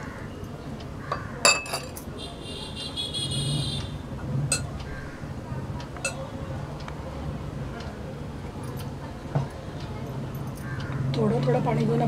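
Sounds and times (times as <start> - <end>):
spoon clinking against glass bowl: 1.2 - 2.1, 4.5 - 4.7.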